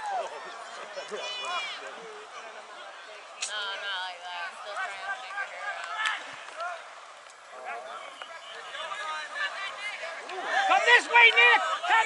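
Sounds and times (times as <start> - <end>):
voices shouting and calling: 0.0 - 12.0.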